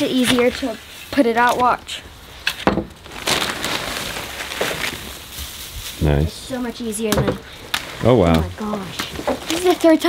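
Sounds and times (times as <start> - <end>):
wood shavings rustling: 0.0 - 10.0.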